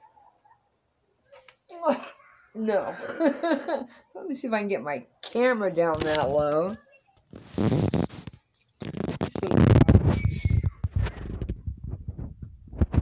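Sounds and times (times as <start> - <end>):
camera handling noise on sweater: 5.9 - 13.0.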